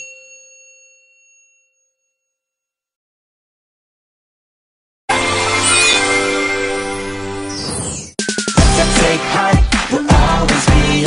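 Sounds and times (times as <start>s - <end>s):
bright bell-like chime: 0.0s - 2.8s, 5.4s - 8.7s.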